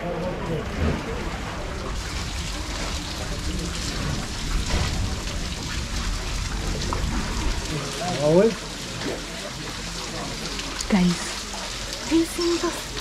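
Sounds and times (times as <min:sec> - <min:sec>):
steady rain falling: 0:00.0 - 0:13.0.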